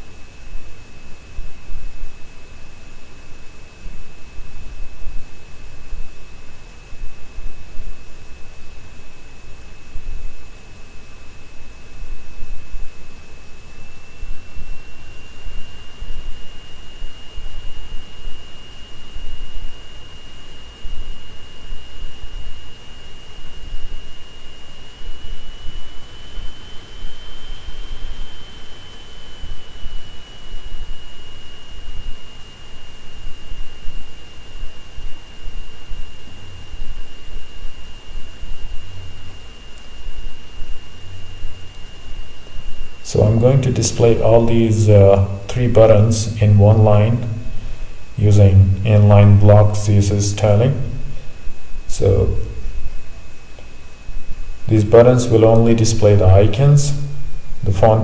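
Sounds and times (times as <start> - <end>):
high-pitched whine: 0.0 - 58.0.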